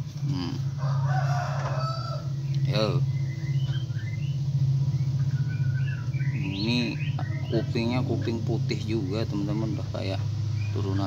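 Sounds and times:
low hum: 0.0s - 11.0s
rooster crowing: 0.4s - 2.9s, 7.0s - 8.4s
faint high bird chirps: 1.7s - 11.0s.

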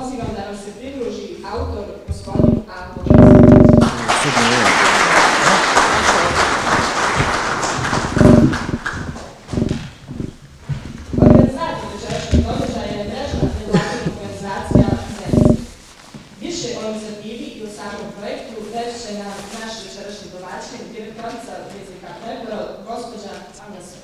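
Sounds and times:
speech over public-address system: 0.0s - 6.7s, 11.2s - 15.7s
dense noise: 2.1s - 15.9s.

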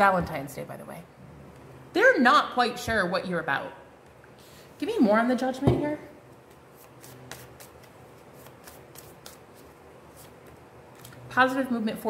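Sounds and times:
cards being shuffled: 6.5s - 11.2s.

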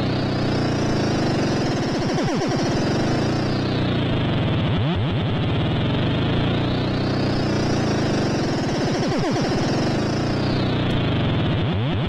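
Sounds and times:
rising filter sweep: 0.0s - 4.5s, 5.8s - 11.6s
buzzy synthesizer drone: 0.0s - 12.0s.

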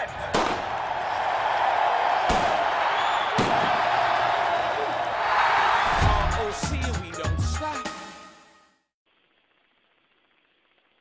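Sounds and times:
pistol shots: 0.3s - 0.7s, 2.3s - 2.6s, 3.4s - 3.7s.

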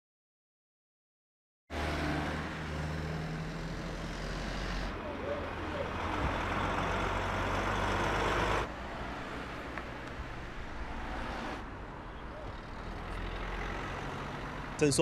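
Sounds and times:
diesel lorry engines idling: 1.8s - 10.9s, 11.5s - 15.0s.

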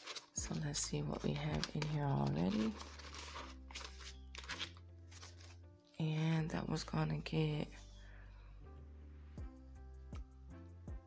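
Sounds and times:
paper bills crinkling: 0.0s - 5.6s
background music of held chords: 0.4s - 11.0s.

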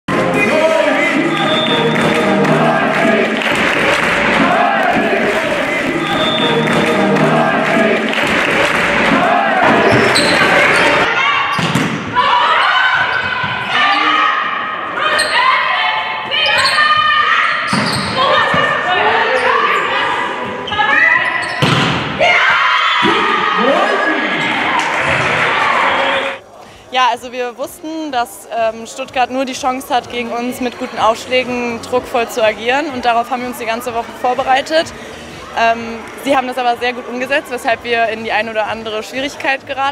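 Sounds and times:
music: 0.1s - 11.0s, 28.6s - 39.9s
sports hall background noise: 0.1s - 39.9s
players calling out: 0.2s - 21.6s
volleyball hits: 1.4s - 12.2s, 21.5s - 22.4s.

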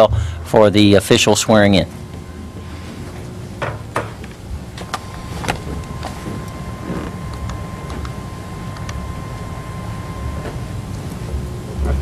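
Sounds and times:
low rumble: 0.0s - 1.0s.

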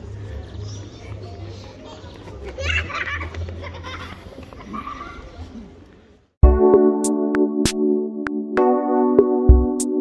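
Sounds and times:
children's voices outdoors: 0.0s - 6.3s.

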